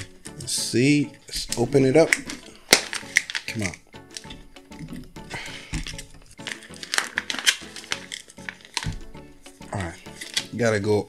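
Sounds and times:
background music: 0.0s - 11.0s
plastic pouch crinkling: 1.6s - 4.8s, 5.9s - 10.6s.

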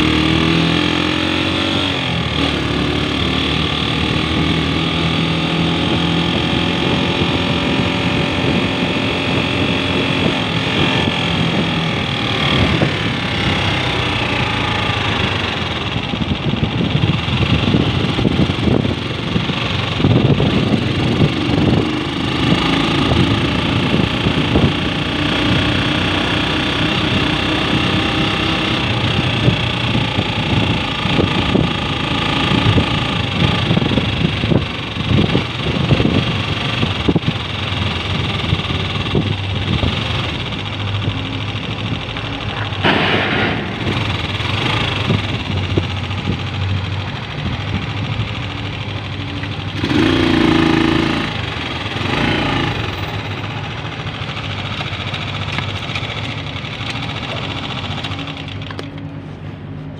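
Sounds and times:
motorcycle engine running: 0.0s - 59.9s
road and wind noise: 0.0s - 59.9s.

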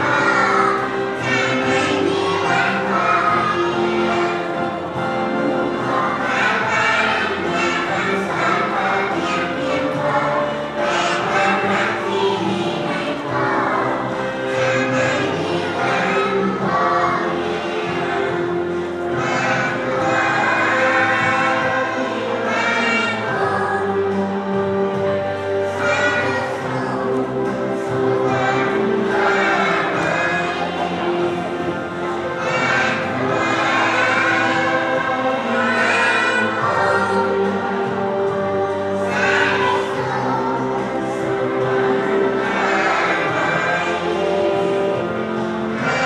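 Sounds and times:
backing music: 0.0s - 46.0s
choir singing: 0.0s - 46.0s.

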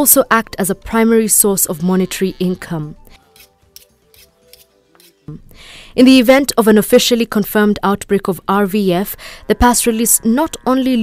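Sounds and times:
faint background music: 0.0s - 11.0s
knife blades scraping together: 3.2s - 5.3s.

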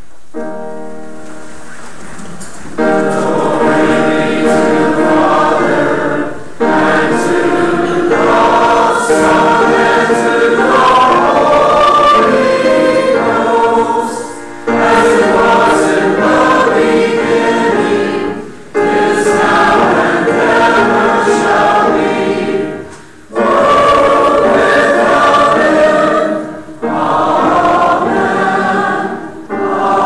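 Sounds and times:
choir and congregation singing hymn: 2.3s - 30.0s.

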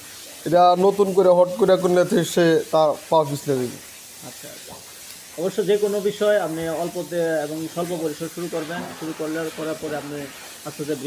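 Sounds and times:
faint background hiss: 0.0s - 11.0s
man talking: 0.4s - 4.8s, 5.4s - 11.0s.

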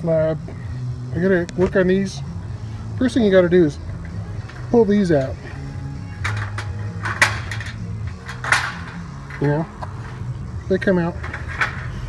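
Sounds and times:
steady low hum: 0.0s - 12.0s
metal rods clinking: 3.7s - 12.0s.

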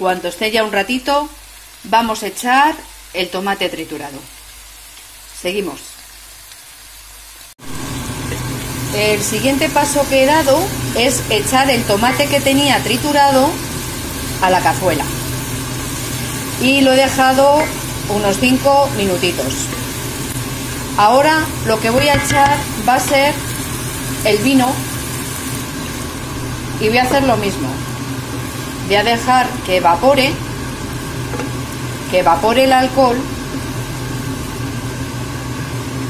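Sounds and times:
crushed tomato sizzling in a pan: 0.0s - 36.0s
food sizzling in oil in a pan: 0.0s - 36.0s
steady low hum: 7.7s - 36.0s.

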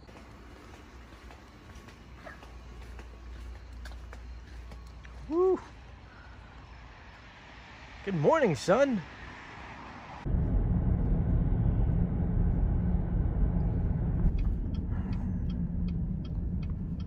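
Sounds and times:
car driving rumble: 9.7s - 17.0s.

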